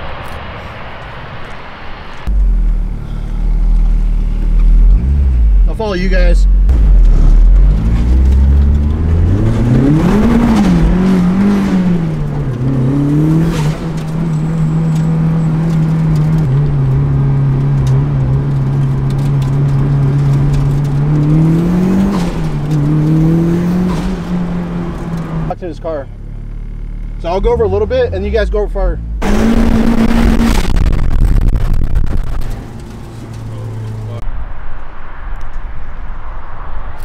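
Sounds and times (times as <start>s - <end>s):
car engine revving from inside cabin: 6.7s - 25.4s, 29.0s - 32.2s.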